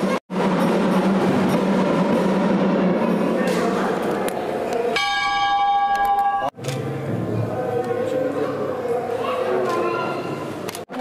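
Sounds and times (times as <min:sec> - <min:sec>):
busy background noise: 0:00.0 - 0:11.0
metallic ringing tone: 0:04.9 - 0:06.6.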